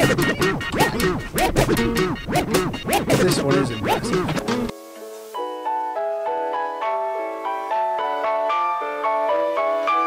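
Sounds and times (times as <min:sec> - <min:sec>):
turntable scratching over a beat: 0:00.0 - 0:04.7
held piano-like notes: 0:00.0 - 0:10.0.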